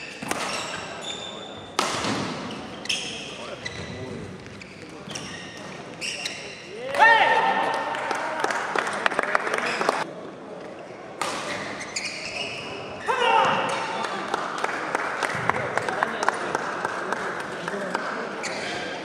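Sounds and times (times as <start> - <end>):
court shoes squeaking: 0.0 - 6.9, 9.5 - 13.9, 18.3 - 19.0
racket striking shuttlecock: 0.2 - 0.7, 1.8 - 2.4.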